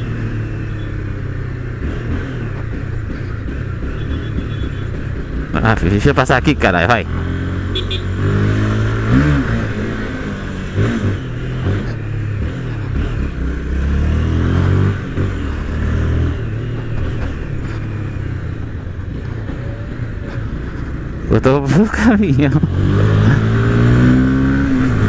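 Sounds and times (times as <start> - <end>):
motorcycle engine revving: 0.0 - 25.0.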